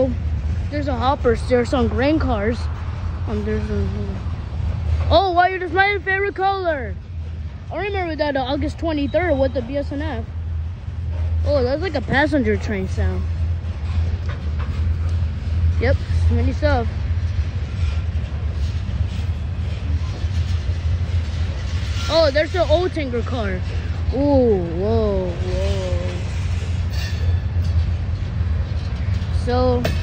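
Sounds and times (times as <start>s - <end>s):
freight train rumbling past: 0.0s - 30.0s.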